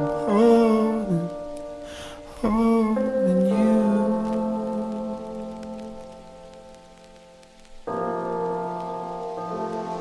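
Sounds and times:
rain pattering: 0.0s - 10.0s.

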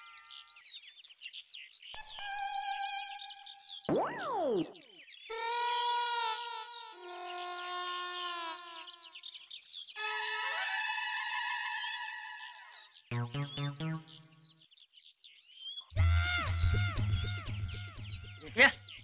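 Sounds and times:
high chirp-like warbles: 3.8s - 5.1s, 13.1s - 14.8s
comic background music: 13.1s - 14.5s.

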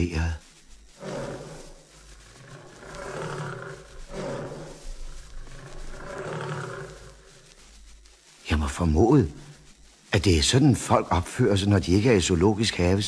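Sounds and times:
lion calling: 0.9s - 7.7s.

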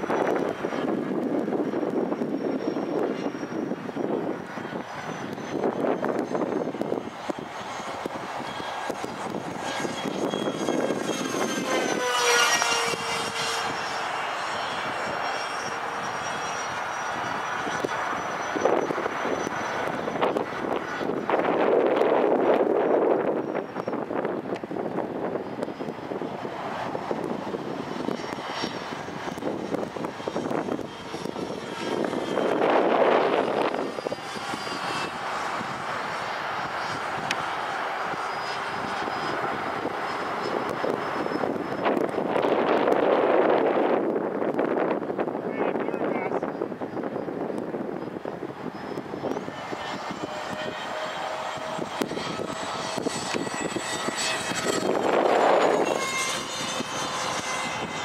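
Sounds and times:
model jet fans rushing and whining: 0.0s - 58.0s.

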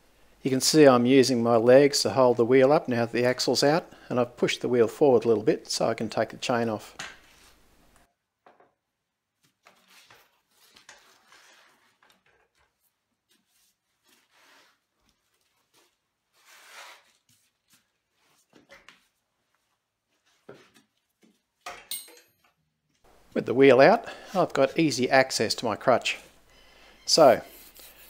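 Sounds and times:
soft handling rustles and scrapes: 7.2s - 7.6s, 9.4s - 21.6s.

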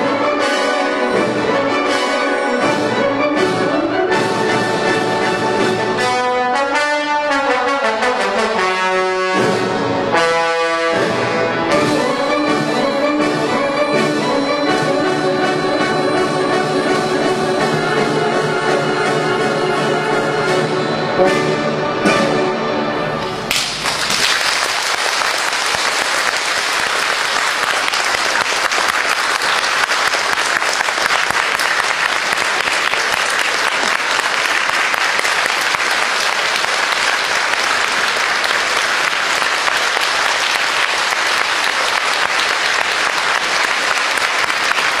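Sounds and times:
wind band chord: 5.2s - 23.2s
audience applauding: 23.5s - 45.0s.

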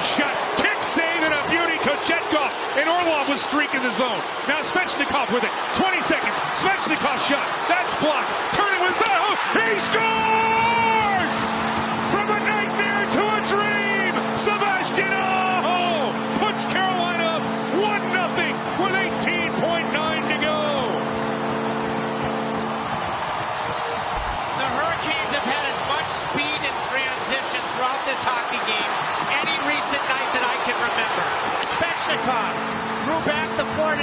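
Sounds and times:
crowd cheering and whooping: 0.0s - 34.0s
goal horn held chord: 9.0s - 22.9s, 31.9s - 34.0s.

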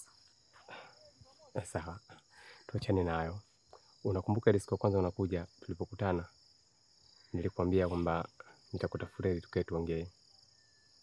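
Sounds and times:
insect chirring: 0.0s - 11.0s
people speaking: 0.7s - 2.1s, 2.7s - 3.4s, 4.1s - 6.2s, 7.4s - 10.1s.

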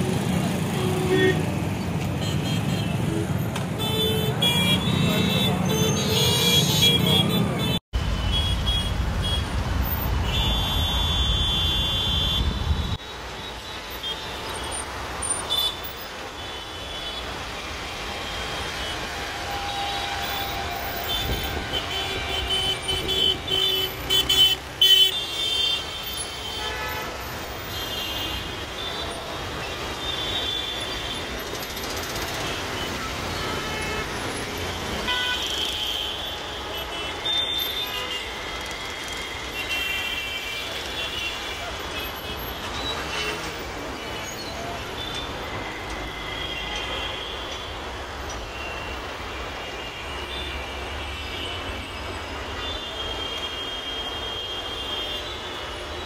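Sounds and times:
engines and road noise: 0.0s - 56.0s
car horns honking: 10.2s - 13.0s, 35.0s - 47.9s.

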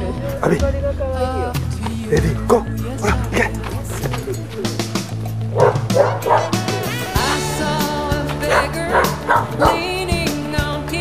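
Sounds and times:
song with singing: 0.0s - 5.2s, 6.1s - 11.0s
dog barking: 5.5s - 7.0s, 8.4s - 9.9s.

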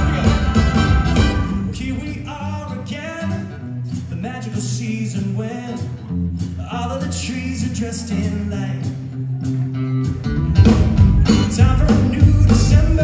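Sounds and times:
steady bass line: 0.0s - 4.4s, 5.1s - 13.0s
man singing: 0.0s - 9.2s, 11.2s - 13.0s
live band playing dance music: 0.0s - 13.0s.

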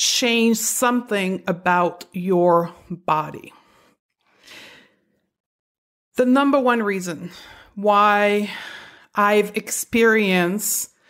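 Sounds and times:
woman breathing in: 3.6s - 5.3s, 8.5s - 9.1s.

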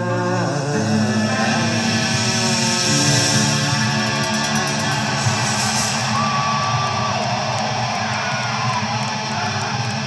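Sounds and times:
live metal band playing: 0.0s - 10.0s.

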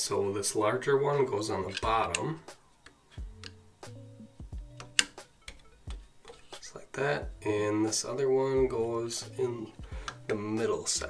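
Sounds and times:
soft background music: 0.0s - 11.0s
wire connector clicking into socket: 1.7s - 3.6s.

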